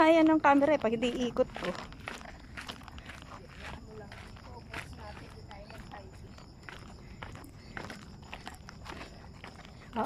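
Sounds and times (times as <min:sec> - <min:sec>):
footsteps on stone steps: 0:00.0 - 0:10.0.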